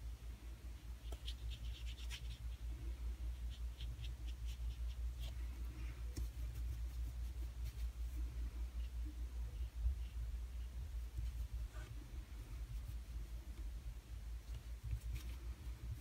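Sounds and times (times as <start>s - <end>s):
brush scratching and tapping on paper: 3.3s - 9.1s, 9.9s - 13.8s, 14.4s - 16.0s.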